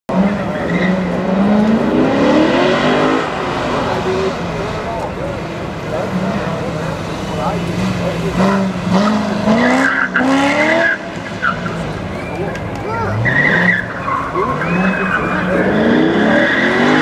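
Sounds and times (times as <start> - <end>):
car engine accelerating: 0.1 - 17.0.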